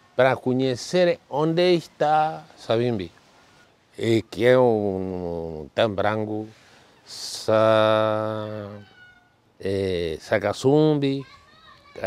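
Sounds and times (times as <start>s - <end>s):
man speaking: 0.2s - 3.2s, 4.0s - 8.9s, 9.6s - 11.3s
faint higher voice: 11.1s - 12.0s.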